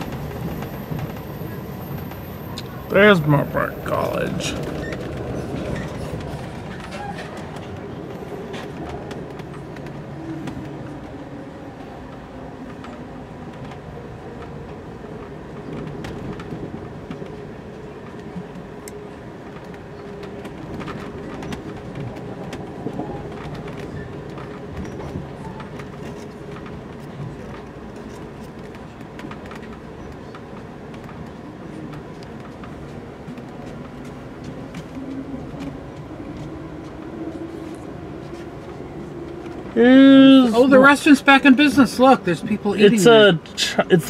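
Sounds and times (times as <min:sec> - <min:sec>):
train rumbling on track: 0:00.0 - 0:44.0
clicks and knocks from wheels: 0:19.5 - 0:37.0.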